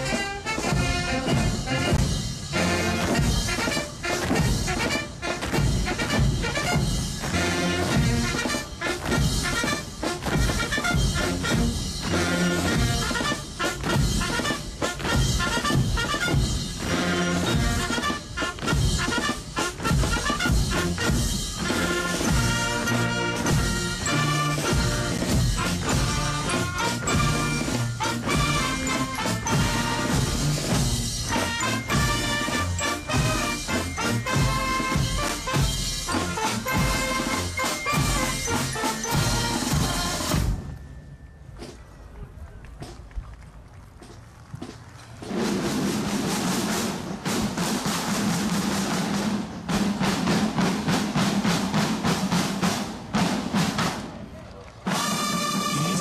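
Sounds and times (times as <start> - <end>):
rapid drum strokes: 0.0 - 40.6, 45.2 - 54.2, 54.9 - 56.0
military marching band: 0.0 - 56.0.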